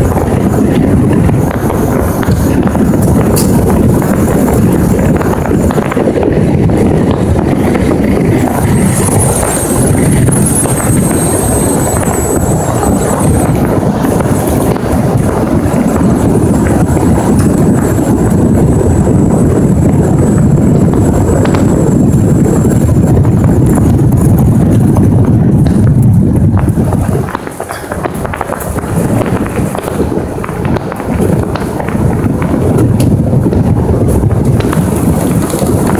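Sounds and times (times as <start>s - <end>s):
vehicle driving rumble: 0.0s - 35.9s
wind buffeting microphone: 0.0s - 35.9s
faint high whine: 8.3s - 14.7s.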